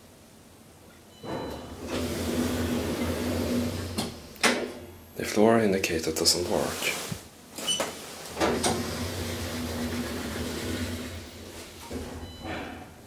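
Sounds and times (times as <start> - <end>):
low hum of elevator travelling: 1.1 - 5.0, 7.7 - 13.0
elevator doors closing with thud: 1.2 - 4.9, 7.6 - 13.0.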